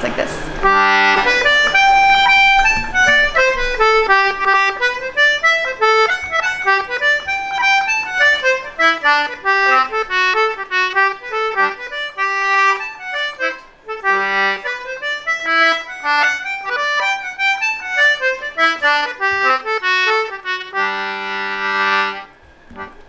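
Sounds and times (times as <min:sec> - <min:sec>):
concertina playing a quick tune: 0:00.0 - 0:23.0.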